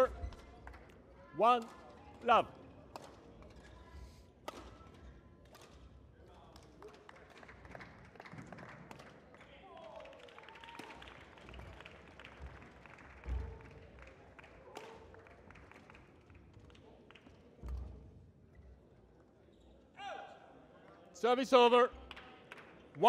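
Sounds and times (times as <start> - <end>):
rackets striking shuttlecock: 2.9 - 3.6, 4.4 - 5.8.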